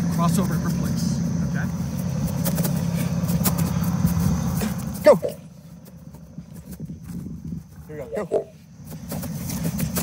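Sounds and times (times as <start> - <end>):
low outdoor rumble: 0.0 - 10.0
footfalls on dirt: 2.0 - 10.0.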